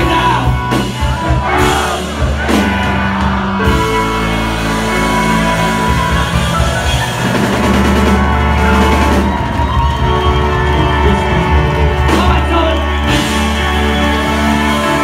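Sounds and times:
live rock band playing: 0:00.0 - 0:15.0.

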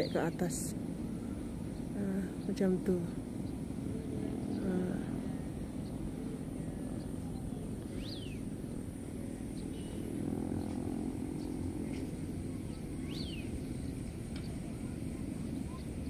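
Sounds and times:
distant motor vehicles rumble: 0:00.0 - 0:16.0
engine hum: 0:00.0 - 0:16.0
bird chirps: 0:05.7 - 0:08.5, 0:09.4 - 0:16.0.

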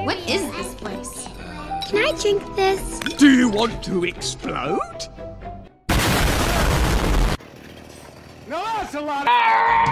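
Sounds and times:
loud explosion: 0:05.9 - 0:07.4.

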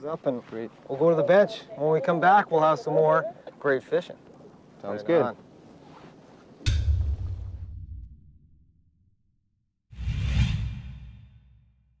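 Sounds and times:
deep rumble: 0:06.7 - 0:08.8
whoosh: 0:09.9 - 0:11.8.

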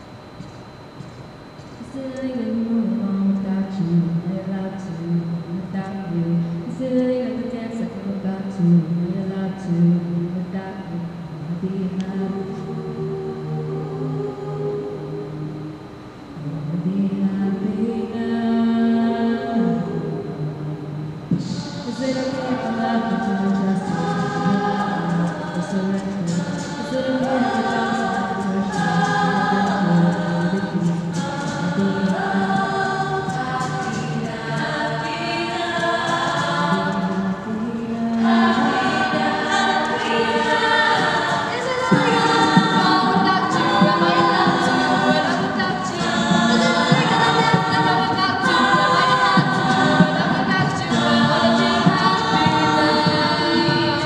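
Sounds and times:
women singing in close harmony: 0:01.8 - 0:54.0.

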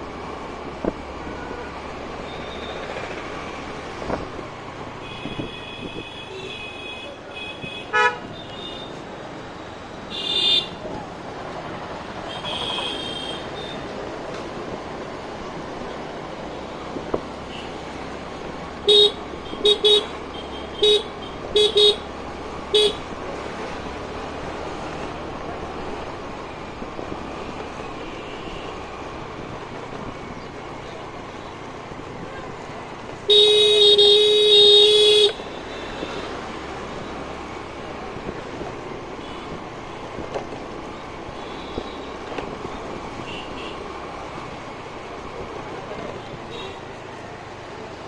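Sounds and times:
street traffic: 0:00.0 - 0:48.0
scooter horn tooting: 0:05.0 - 0:09.0, 0:10.1 - 0:10.8, 0:12.3 - 0:13.8, 0:22.8 - 0:23.0, 0:33.3 - 0:36.2.

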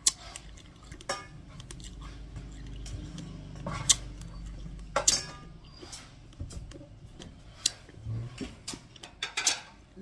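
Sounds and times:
crunching raw rice: 0:00.0 - 0:04.5.

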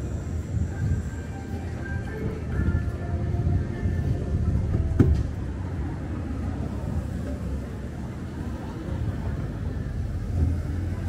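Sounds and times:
low street rumble: 0:00.0 - 0:11.0.

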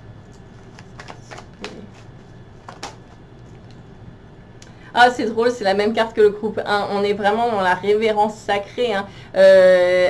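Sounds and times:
cards being shuffled: 0:00.2 - 0:03.8.

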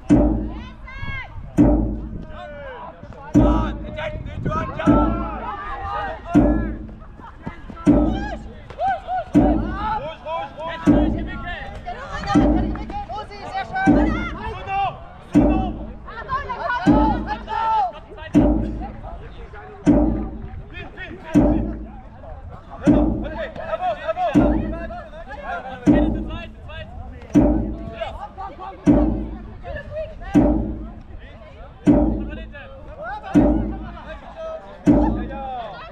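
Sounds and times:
drum struck steadily: 0:00.0 - 0:35.9
players shouting: 0:00.1 - 0:19.1.

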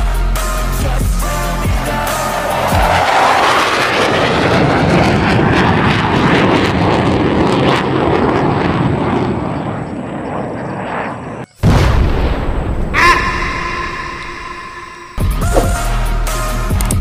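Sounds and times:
plane passing with rushing drone: 0:00.7 - 0:11.6, 0:12.6 - 0:16.0
sudden loud blast: 0:11.6 - 0:15.9.

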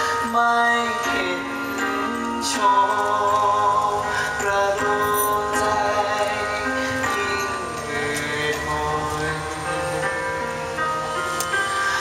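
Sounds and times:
man singing long notes: 0:00.0 - 0:10.4
recorded musical backing: 0:00.0 - 0:12.0.

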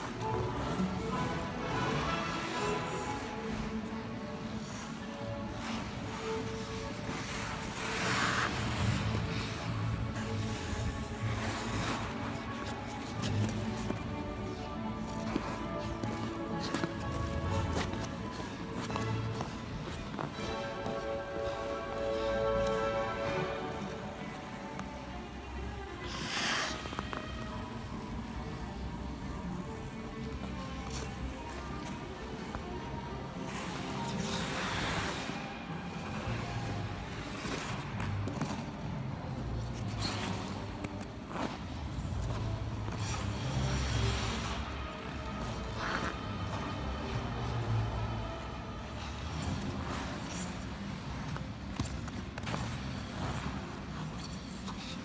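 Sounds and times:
skate blades scraping ice: 0:00.0 - 0:55.0.

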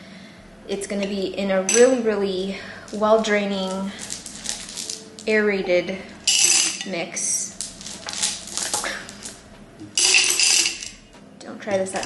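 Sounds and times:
stones clinking in glass vase: 0:03.6 - 0:05.3, 0:06.2 - 0:07.0, 0:07.6 - 0:09.4, 0:10.0 - 0:11.0.

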